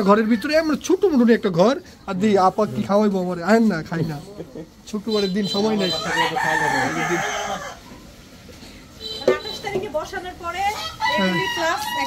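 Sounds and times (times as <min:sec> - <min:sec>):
rooster crowing: 0:05.8 - 0:08.0, 0:10.7 - 0:12.0.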